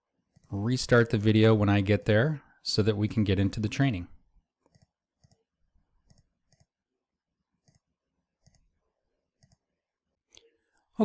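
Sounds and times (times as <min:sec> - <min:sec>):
faint computer mouse clicks: 0:04.6 - 0:05.4, 0:06.0 - 0:06.8, 0:07.6 - 0:08.7, 0:09.4 - 0:09.6.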